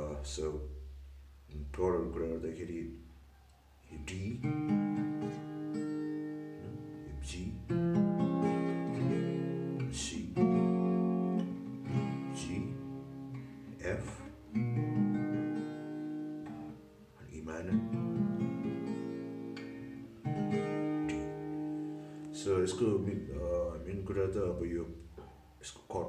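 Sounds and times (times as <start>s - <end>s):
acoustic guitar chords strummed: 4.1s - 25.4s.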